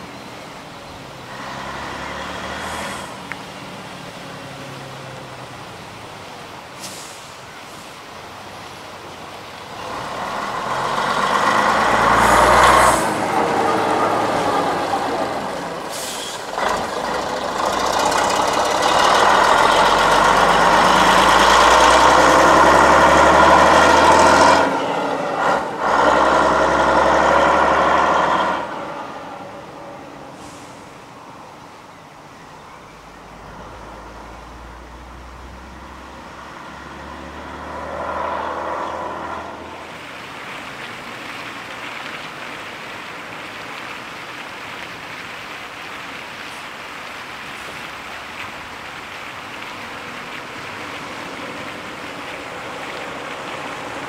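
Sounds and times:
bus diesel engine driving past: 0.0s - 8.1s, 9.3s - 42.4s
another vehicle engine: 9.8s - 29.8s.

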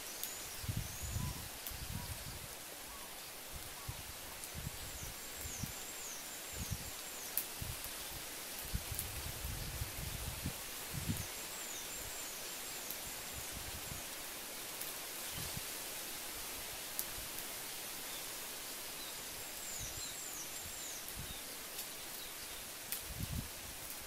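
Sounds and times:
branches and leaves rustling: 0.0s - 24.0s.

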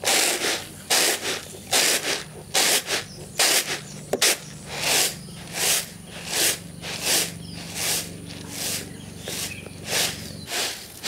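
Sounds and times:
grains rustling on bamboo tray: 0.0s - 11.0s.

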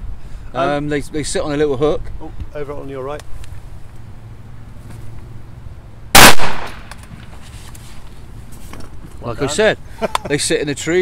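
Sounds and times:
shotgun shot with echo: 6.2s - 7.0s.

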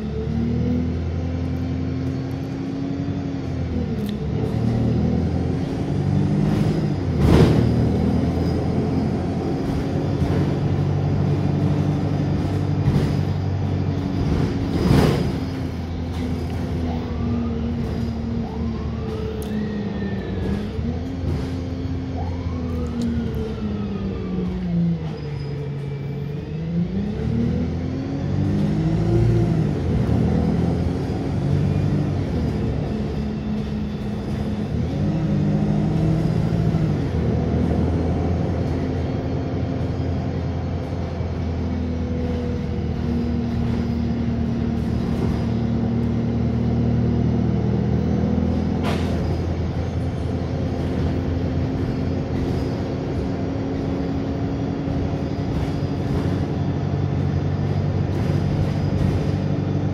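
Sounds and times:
bus diesel engine: 0.0s - 59.9s.

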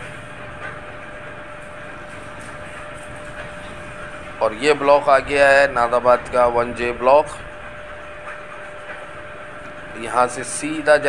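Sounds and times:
road and traffic noise: 0.0s - 11.0s
thin steady whine: 0.0s - 11.0s.

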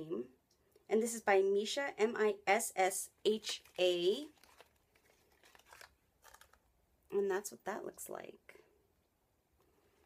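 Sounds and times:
packaging crinkling: 3.3s - 6.8s.

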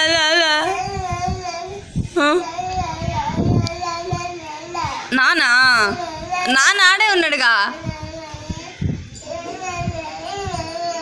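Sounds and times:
toddler crying: 7.8s - 11.0s.

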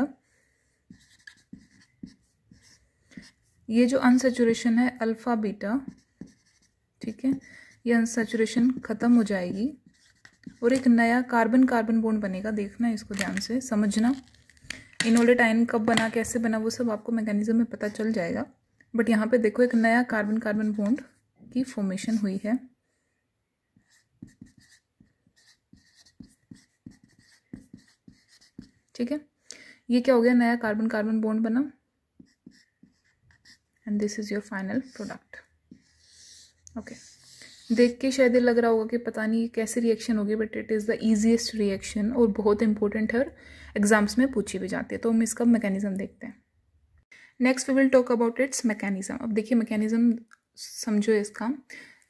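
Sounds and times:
marker scratching on whiteboard: 0.8s - 4.8s, 5.6s - 11.3s, 17.6s - 18.4s, 19.6s - 22.6s, 23.8s - 29.0s, 32.2s - 38.3s.

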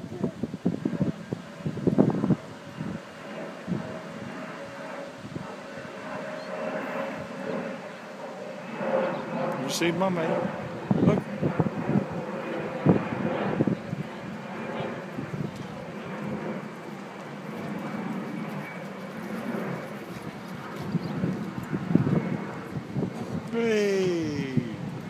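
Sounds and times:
wind on microphone: 0.0s - 7.7s, 8.9s - 25.0s
faint voices: 12.2s - 21.3s, 23.5s - 25.0s.

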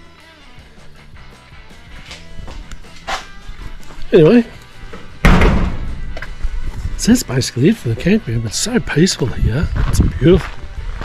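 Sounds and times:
background music: 0.0s - 11.0s
loud thump: 5.2s - 6.1s.

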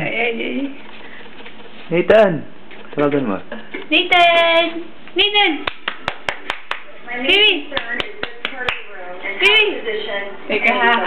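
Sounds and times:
quick sharp hand claps: 5.6s - 6.9s.

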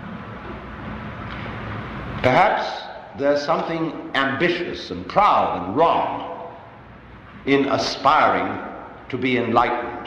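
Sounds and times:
recording hiss and low hum: 0.0s - 10.0s.

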